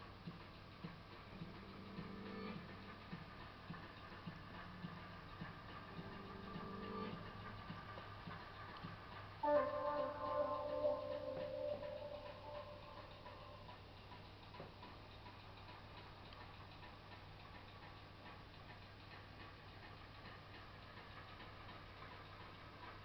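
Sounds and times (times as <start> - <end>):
faint low hum: 0.0 - 23.0
faint ticking: 0.0 - 23.0
held musical tone: 0.4 - 16.0.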